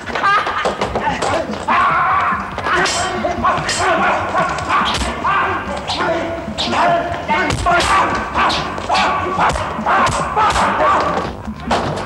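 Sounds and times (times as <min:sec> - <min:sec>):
fighters grunting and yelling: 0:00.2 - 0:11.3.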